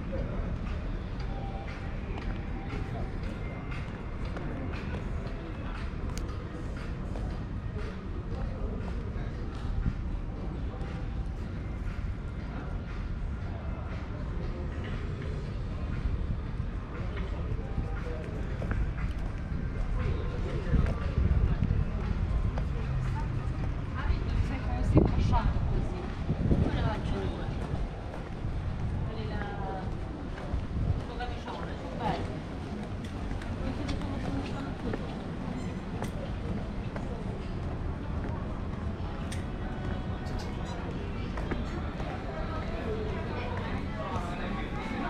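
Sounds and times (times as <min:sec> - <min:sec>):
music: 0:00.0 - 0:45.0
voices of passers-by: 0:00.0 - 0:45.0.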